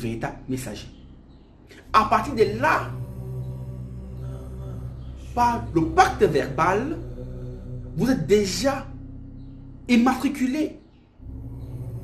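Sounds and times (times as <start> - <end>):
low drone of sustained tones: 0.0 - 12.0.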